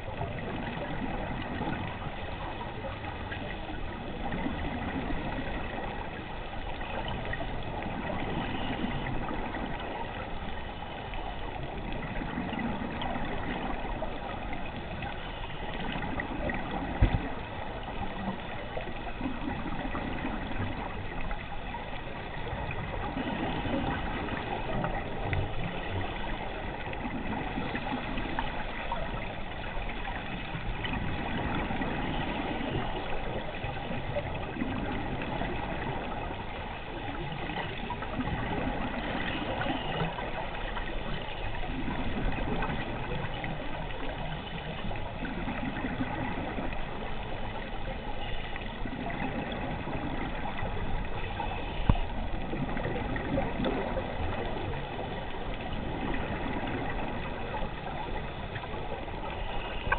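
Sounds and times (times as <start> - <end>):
exhaust bubbles: 0.0 - 59.9
faint steady tones: 0.0 - 59.9.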